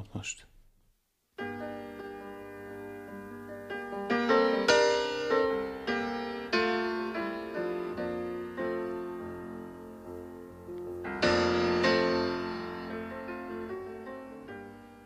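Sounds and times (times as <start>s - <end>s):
piano chords: 1.4s - 15.0s.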